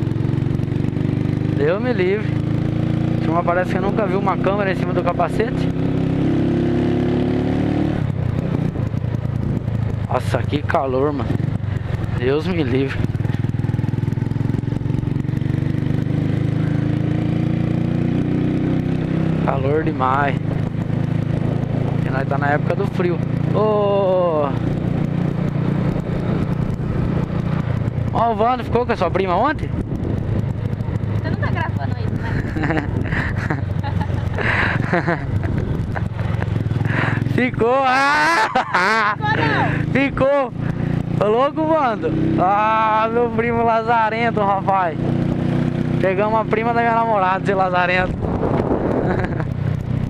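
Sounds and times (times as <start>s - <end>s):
motorcycle engine running: 0.0s - 50.0s.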